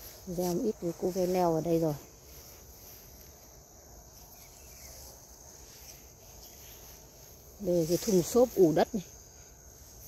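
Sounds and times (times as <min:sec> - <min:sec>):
high-pitched insect chirring: 0:00.0 - 0:10.0.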